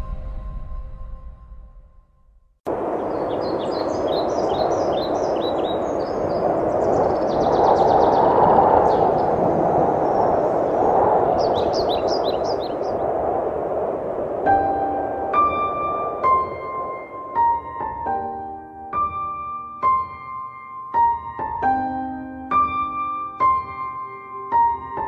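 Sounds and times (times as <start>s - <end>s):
birds chirping: 2.8s - 13.2s
bird trill: 3.0s - 8.3s, 11.4s - 13.0s.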